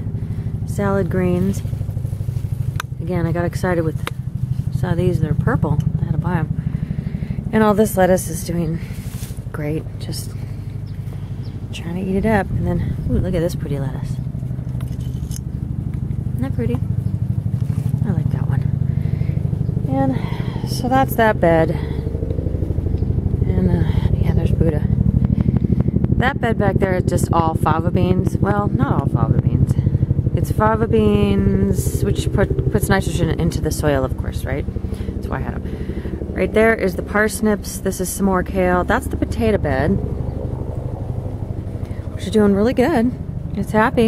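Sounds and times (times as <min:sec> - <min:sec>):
engine running steadily: 0:00.0 - 0:44.0
low mechanical rumble: 0:00.0 - 0:44.0.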